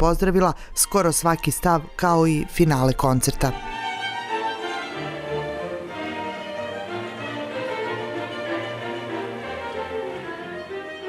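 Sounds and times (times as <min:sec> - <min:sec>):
string orchestra holding low notes: 0:00.2 - 0:11.0
solo violin melody: 0:00.6 - 0:11.0.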